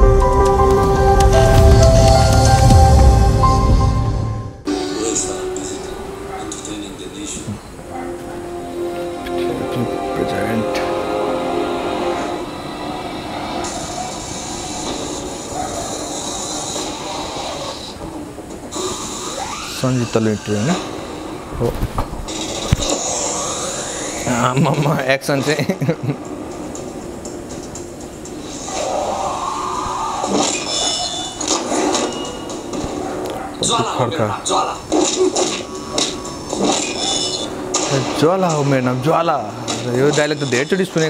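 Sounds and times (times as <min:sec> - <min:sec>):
held music notes: 0:00.0 - 0:14.4
faint music: 0:00.0 - 0:41.0.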